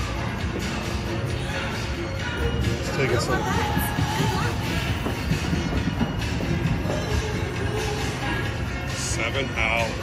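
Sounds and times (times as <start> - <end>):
casino background music: 0.0 - 10.0.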